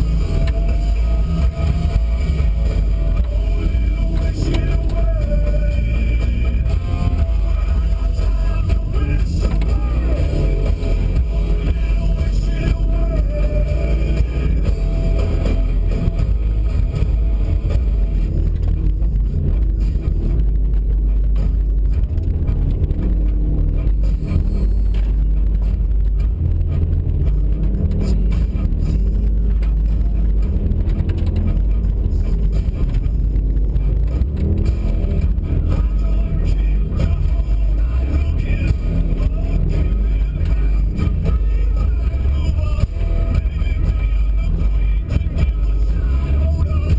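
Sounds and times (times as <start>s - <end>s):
car engine under load: 0.0s - 46.9s
music playing: 0.0s - 46.9s.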